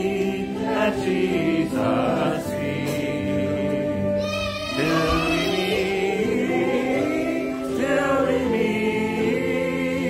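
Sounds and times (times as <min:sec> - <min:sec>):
sustained accompaniment: 0:00.0 - 0:10.0
voices singing a hymn: 0:00.0 - 0:10.0.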